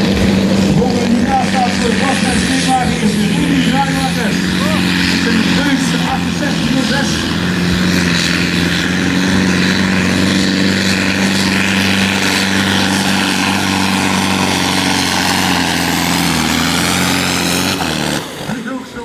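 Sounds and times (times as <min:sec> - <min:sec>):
diesel tractor engine droning: 0:00.0 - 0:19.0.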